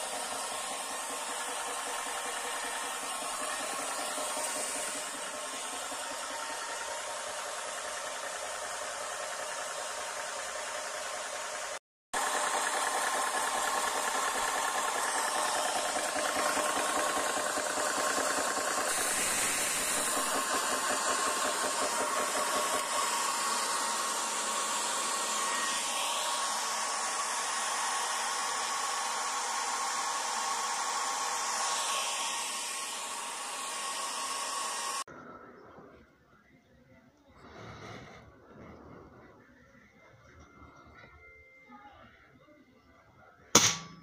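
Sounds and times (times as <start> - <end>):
air compressor running: 0.0 - 35.1.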